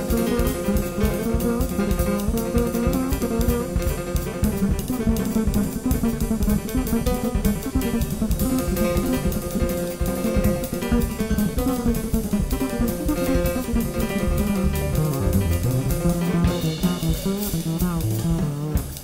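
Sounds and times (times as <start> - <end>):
jazz piano trio playing: 0.0 - 19.0.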